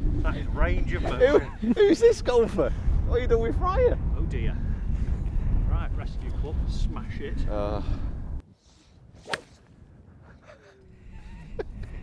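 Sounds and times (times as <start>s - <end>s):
golf club striking ball: 9.2s - 9.6s.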